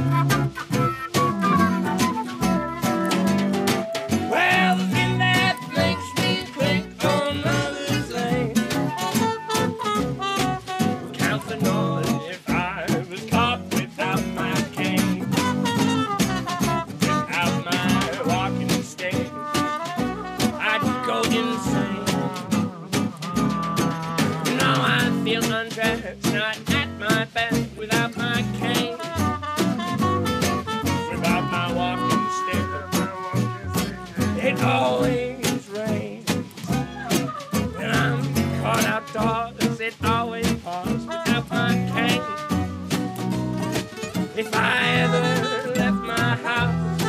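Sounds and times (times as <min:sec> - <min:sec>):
trumpet melody: 0:00.0 - 0:26.2, 0:27.8 - 0:47.0
flute melody: 0:00.0 - 0:47.0
guitars: 0:00.0 - 0:47.0
snare drum beat: 0:00.0 - 0:47.0
upright double bass: 0:00.0 - 0:47.0.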